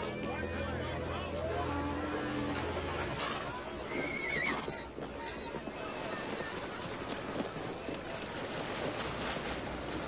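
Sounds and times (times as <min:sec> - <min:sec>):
crowd voices and noise: 0:00.0 - 0:10.0
horse whinnying: 0:03.9 - 0:04.7.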